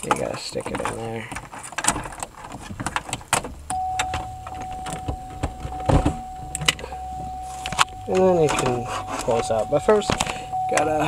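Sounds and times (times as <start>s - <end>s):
plastic trim clicking and rattling: 0.0s - 6.8s
steady high tone: 3.7s - 11.0s.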